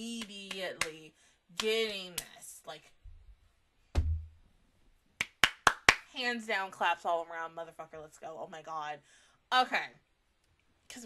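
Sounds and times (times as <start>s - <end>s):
thump: 3.9s - 4.4s
sharp hand claps: 5.2s - 6.1s.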